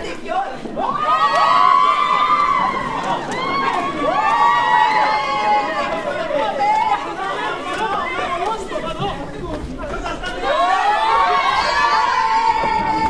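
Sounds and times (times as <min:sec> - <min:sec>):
group of voices shouting: 0:10.4 - 0:13.0.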